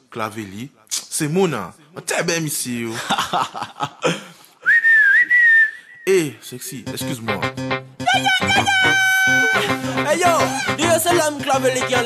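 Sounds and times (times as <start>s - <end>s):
person whistling a catcall: 4.6s - 6.1s.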